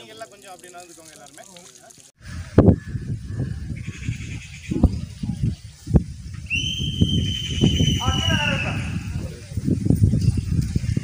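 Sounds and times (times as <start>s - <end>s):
wind rumbling on microphone: 2.2s - 11.0s
long high whistle blast: 6.5s - 8.9s.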